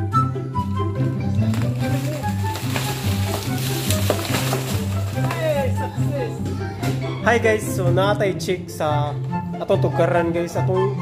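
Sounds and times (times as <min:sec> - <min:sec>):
background music with bass line: 0:00.0 - 0:11.0
dry leaves crackling and rustling: 0:01.3 - 0:06.4.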